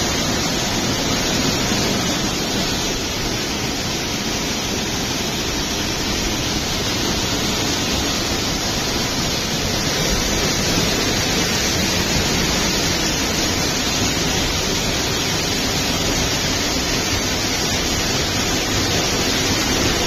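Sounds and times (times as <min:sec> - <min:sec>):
waterfall splashing onto rocks: 0:00.0 - 0:20.0.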